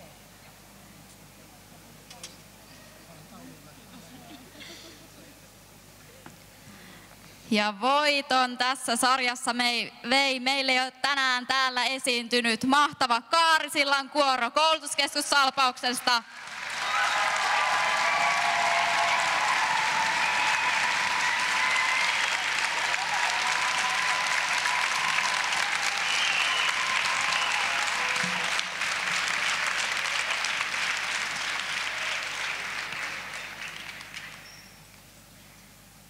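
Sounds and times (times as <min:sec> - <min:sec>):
audience applauding: 0:16.3 - 0:34.6
people cheering: 0:16.4 - 0:34.4.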